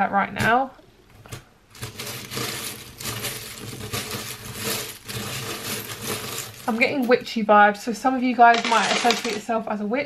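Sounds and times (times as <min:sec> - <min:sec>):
wooden tiles and beads rattling: 0:01.7 - 0:07.2, 0:08.4 - 0:09.5.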